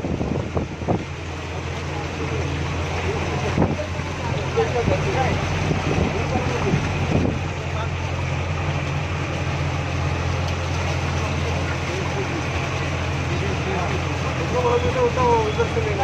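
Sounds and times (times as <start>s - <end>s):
bus engine droning: 0.0s - 16.0s.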